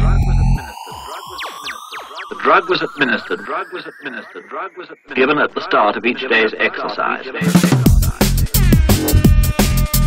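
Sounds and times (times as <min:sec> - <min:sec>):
person speaking: 0:02.3 - 0:04.5.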